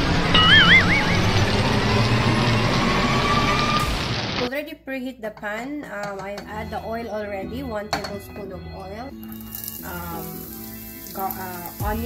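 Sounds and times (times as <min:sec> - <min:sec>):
background music: 0:04.5 - 0:12.0
onion sizzling in hot oil: 0:09.1 - 0:12.0.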